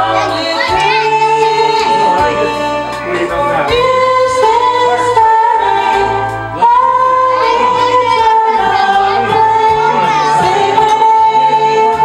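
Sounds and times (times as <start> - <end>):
two women singing a duet: 0.0 - 12.0.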